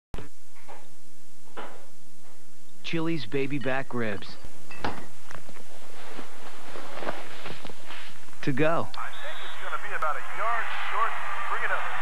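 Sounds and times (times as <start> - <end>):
steady background noise: 0.2 - 12.0.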